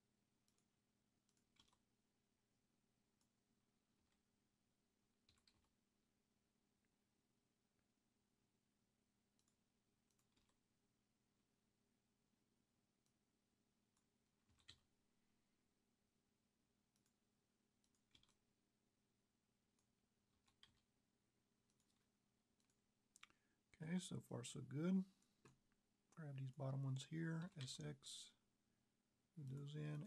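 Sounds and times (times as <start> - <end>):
faint steady hum: 0.0 - 30.0
keyboard and mouse clicks: 0.4 - 0.7, 1.3 - 1.9, 5.2 - 5.8, 9.4 - 10.7, 14.0 - 14.9, 16.9 - 17.2, 17.8 - 18.5, 19.7 - 20.9, 21.7 - 23.4.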